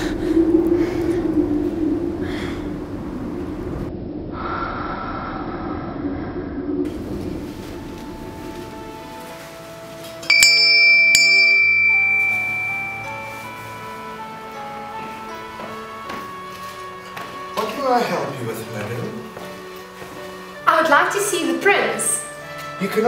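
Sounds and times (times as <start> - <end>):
background music: 6.9 - 23.0
metal door bell ringing: 10.2 - 13.8.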